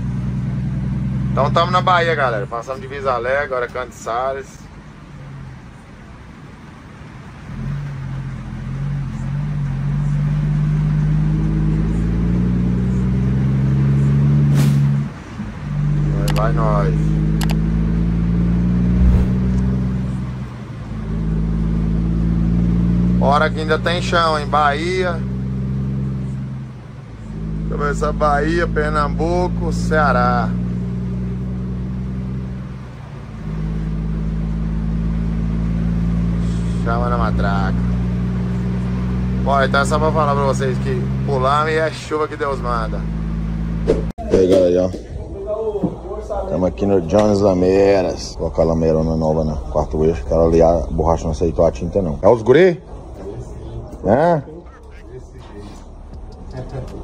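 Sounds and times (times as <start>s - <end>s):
truck diesel engine pulling: 0.0s - 57.0s.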